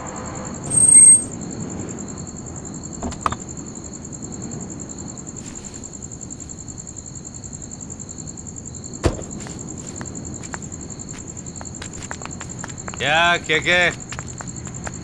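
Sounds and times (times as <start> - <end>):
crickets chirping: 0.0 - 15.0
low night rumble: 0.0 - 15.0.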